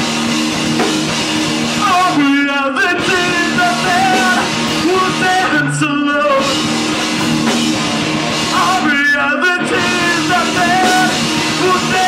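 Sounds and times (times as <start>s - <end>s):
drum kit: 0.0s - 12.0s
electric guitars: 0.0s - 12.0s
person singing into microphone: 1.8s - 6.7s, 8.4s - 12.0s.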